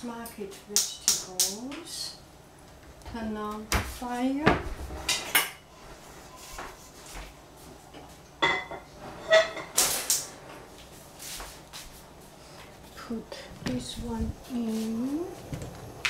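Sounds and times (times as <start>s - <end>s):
metal pots and pans clanking: 8.4s - 9.8s.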